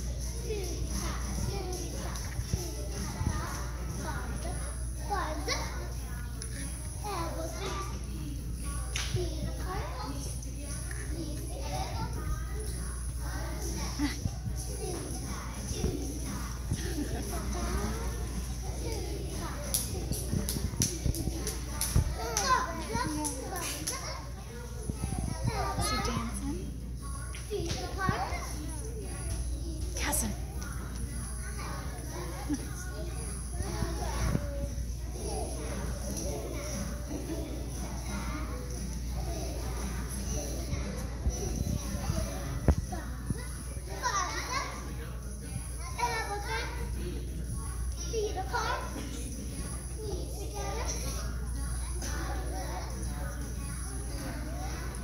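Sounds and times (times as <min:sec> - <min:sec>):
young children's voices: 0:00.0 - 0:55.0.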